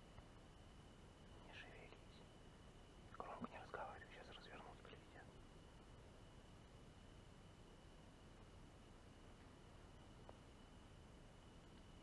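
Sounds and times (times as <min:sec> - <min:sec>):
faint whispering: 0:01.4 - 0:02.3, 0:03.1 - 0:05.4.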